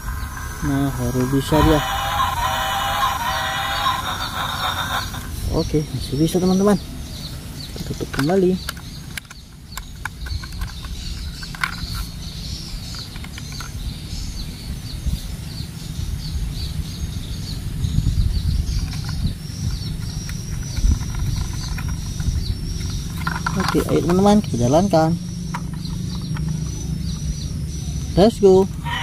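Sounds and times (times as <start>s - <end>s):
low rumble: 0.0s - 28.9s
birds chirping: 0.0s - 29.0s
small plastic clicks: 7.9s - 12.1s.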